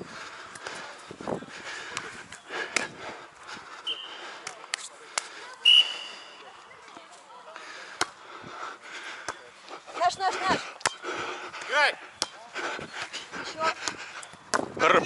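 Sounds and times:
referee's whistle: 3.8s - 4.2s, 5.6s - 6.4s
hand slapping volleyball: 4.4s - 5.4s, 8.0s - 8.2s, 10.8s - 11.0s, 11.6s - 12.4s, 13.8s - 14.7s.

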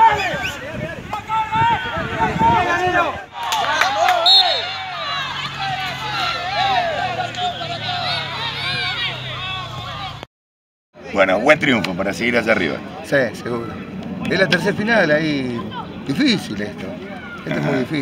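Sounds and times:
people shouting and calling: 0.0s - 10.3s.

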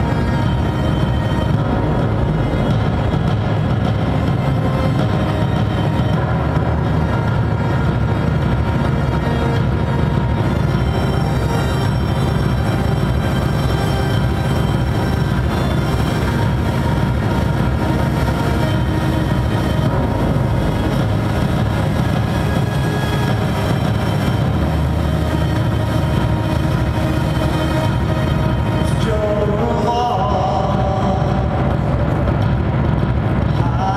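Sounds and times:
industrial electronic drone: 0.0s - 33.9s.

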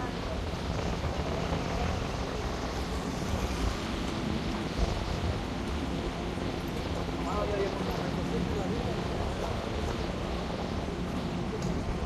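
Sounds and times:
vehicle road noise: 0.0s - 12.0s
wind buffeting microphone: 0.0s - 12.0s.

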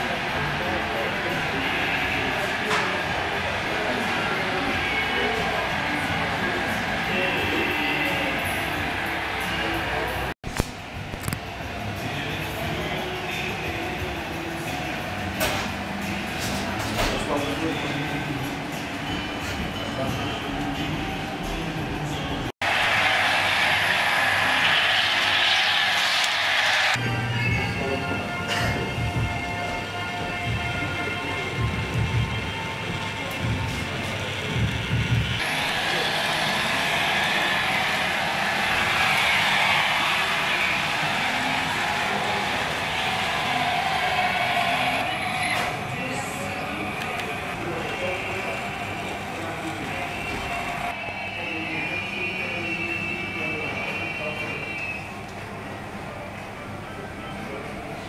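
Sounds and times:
model trains running on track: 0.0s - 10.3s, 22.0s - 27.0s, 30.7s - 45.2s, 46.0s - 58.0s
cafe chatter: 0.0s - 10.4s, 11.1s - 58.0s
background music: 0.0s - 58.0s.

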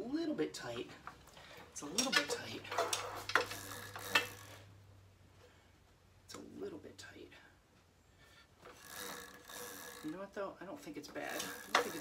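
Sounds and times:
wheel and chain rattle: 1.9s - 4.6s, 8.6s - 10.2s, 11.2s - 12.0s.

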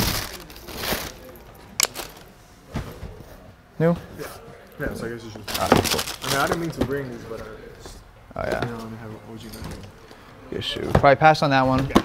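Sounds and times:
box and paper rustling: 0.0s - 2.3s, 5.4s - 7.4s.

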